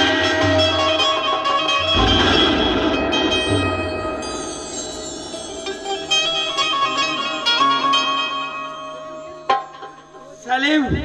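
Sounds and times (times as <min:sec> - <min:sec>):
low rumbling sound effect: 0:02.0 - 0:07.1.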